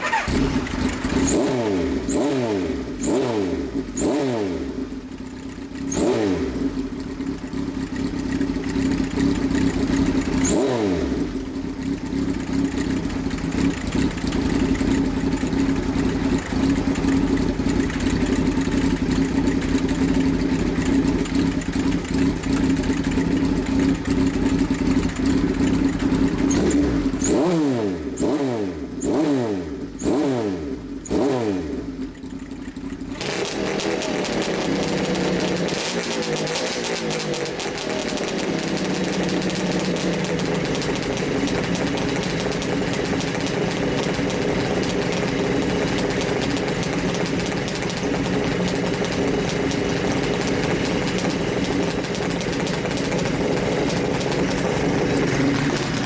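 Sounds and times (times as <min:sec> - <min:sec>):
motorcycle engine revving and idling: 0:00.0 - 0:56.0.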